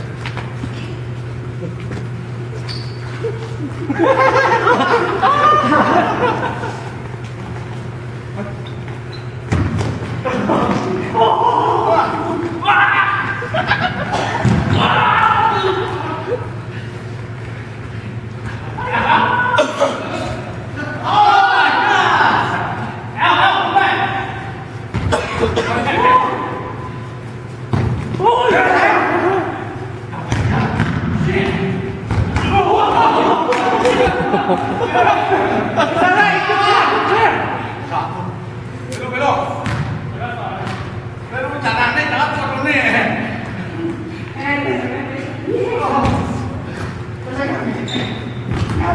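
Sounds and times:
noise of play on hard floor: 0.0s - 19.2s
players calling out: 0.0s - 48.9s
ball thudding on gym floor: 9.5s - 10.2s, 14.4s - 14.9s, 30.3s - 32.6s, 48.5s - 48.9s.

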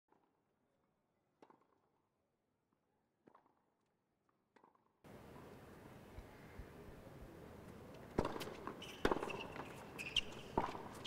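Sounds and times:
tennis ball strikes on racket: 1.4s - 1.8s, 8.2s - 9.8s, 10.5s - 11.0s
open court ambience: 4.6s - 11.0s.

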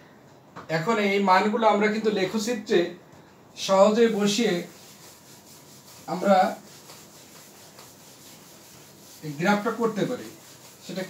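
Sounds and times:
eraser rubbing whiteboard: 3.7s - 11.0s.

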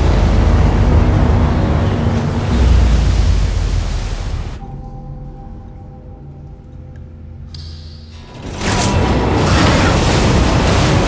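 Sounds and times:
heavy waves: 0.0s - 4.6s, 8.7s - 11.0s
wind roaring: 0.0s - 4.6s
low drone with held tones: 0.0s - 10.2s.

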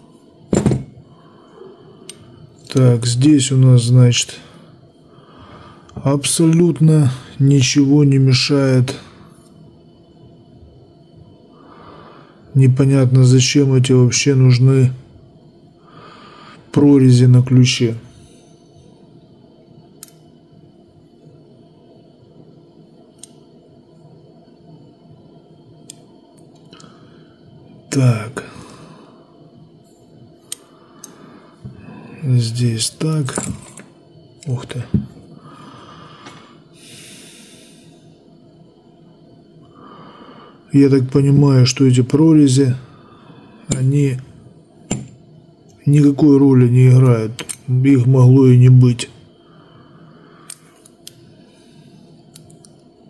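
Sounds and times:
faint steady hum: 0.0s - 53.0s
metal lock part thump: 0.5s - 0.9s
small sharp clicks of lock parts: 50.5s - 51.2s, 52.3s - 52.8s.

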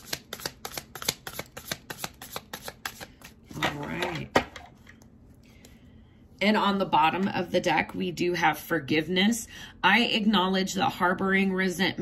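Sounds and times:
cards shuffling: 0.0s - 3.8s.

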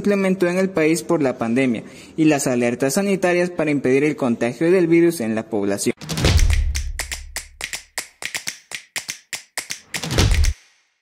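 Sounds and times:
quick clicking taps: 6.0s - 10.6s.

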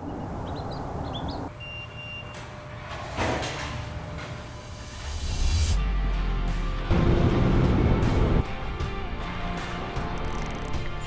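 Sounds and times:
rush of traffic: 0.0s - 1.5s
bird chirps: 0.0s - 2.3s.

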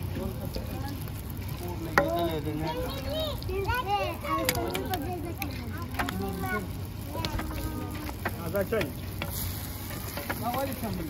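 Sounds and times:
bread sizzling in oil: 0.0s - 11.0s.

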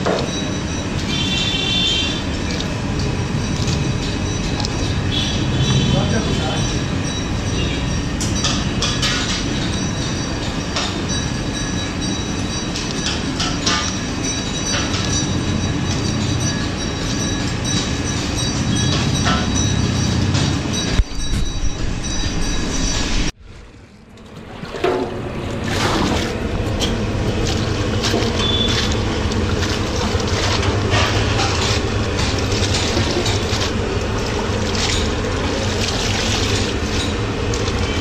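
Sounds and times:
loud rumbling background noise: 0.0s - 38.0s.

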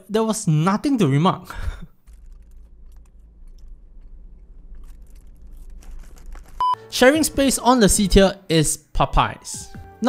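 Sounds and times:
steady low hum: 1.8s - 6.6s
person chewing crunchy food: 1.9s - 6.6s.

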